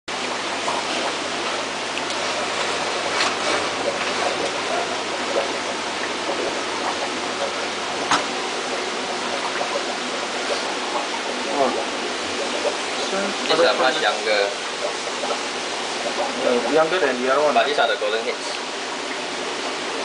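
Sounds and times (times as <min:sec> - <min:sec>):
churning aerated water: 0:00.1 - 0:20.0.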